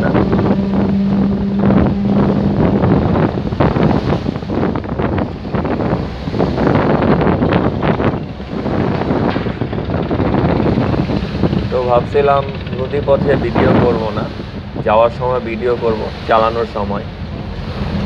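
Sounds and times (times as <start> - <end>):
steady low hum: 0.0 - 18.0
water splashing against boat: 0.0 - 18.0
wind buffeting microphone: 0.0 - 18.0.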